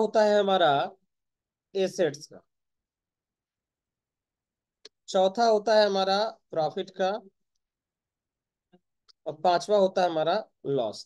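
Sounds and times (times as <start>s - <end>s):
person speaking: 1.7s - 2.6s, 4.8s - 7.7s.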